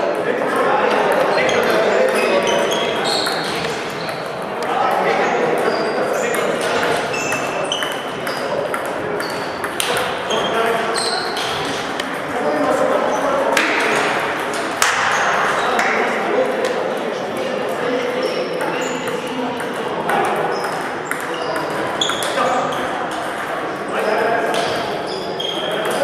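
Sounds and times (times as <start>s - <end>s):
voices talking: 0.0s - 26.0s
table tennis balls ticking: 0.1s - 15.1s, 17.6s - 23.8s.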